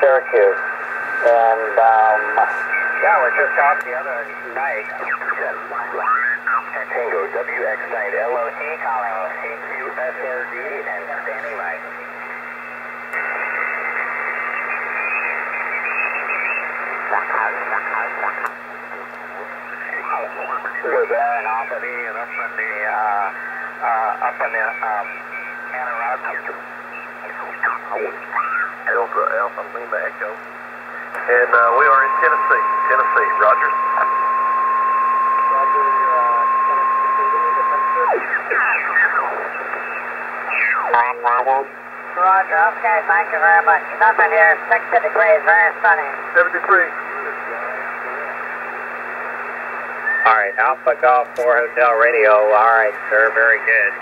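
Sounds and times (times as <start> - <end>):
radio band noise hiss: 0.0 - 54.0.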